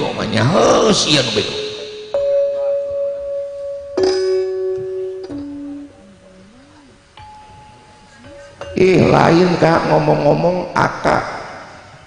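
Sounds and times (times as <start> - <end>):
gamelan struck metal notes: 1.1 - 6.1.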